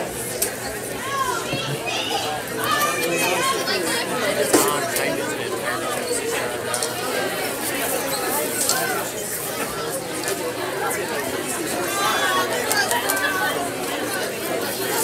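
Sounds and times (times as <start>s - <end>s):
chatter in echoing hall: 0.0s - 15.0s.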